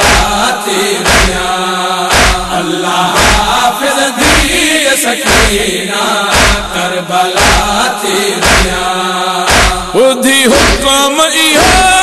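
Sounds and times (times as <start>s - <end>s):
person chanting a lament: 0.0s - 12.0s
deep steady beat: 1.1s - 1.5s, 2.1s - 2.6s, 3.2s - 3.6s, 6.3s - 6.8s, 7.4s - 7.8s, 8.4s - 8.9s, 9.5s - 10.0s.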